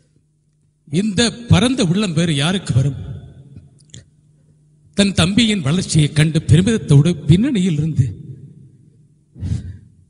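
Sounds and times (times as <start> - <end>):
man speaking: 5.0 - 8.2
man breathing into microphone: 9.4 - 10.0.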